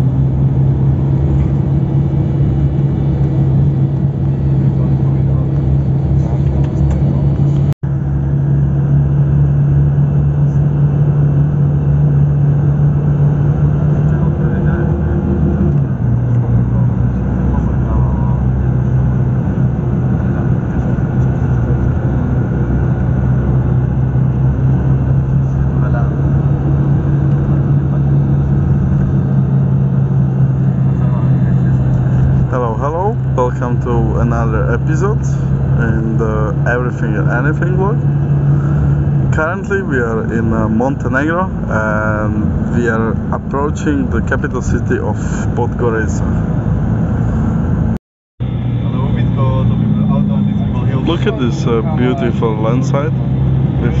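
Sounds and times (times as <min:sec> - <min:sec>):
road noise: 0:00.0 - 0:54.0
vehicle engine drone: 0:00.0 - 0:54.0.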